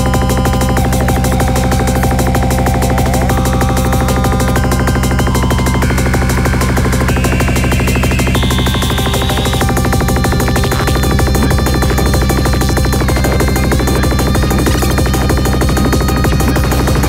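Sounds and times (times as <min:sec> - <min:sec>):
psychedelic trance music: 0:00.0 - 0:17.0.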